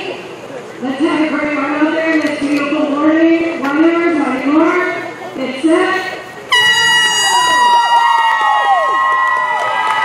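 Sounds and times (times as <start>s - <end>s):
air horn blast: 6.5s - 7.8s.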